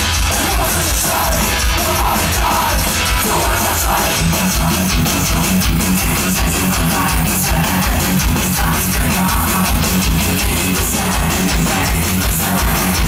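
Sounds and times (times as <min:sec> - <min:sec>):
bass guitar: 0:00.0 - 0:13.0
distorted electric guitar: 0:00.0 - 0:13.0
fast driving drums: 0:00.0 - 0:13.0.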